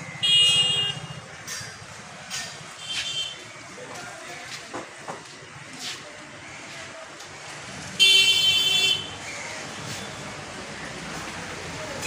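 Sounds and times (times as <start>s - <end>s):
road traffic rumble: 0.0s - 12.0s
vehicle horn toot: 0.2s - 1.2s.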